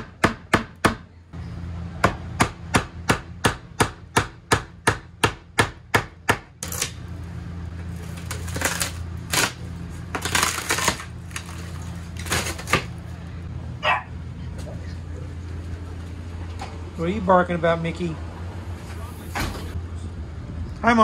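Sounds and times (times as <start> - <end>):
panel crackling and tearing: 7.9 - 13.0.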